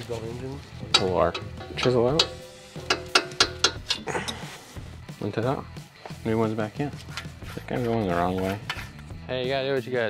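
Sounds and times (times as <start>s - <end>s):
background music: 0.0s - 10.0s
sharp metallic clicks: 0.9s - 4.1s
metal tool rasp: 7.1s - 9.1s.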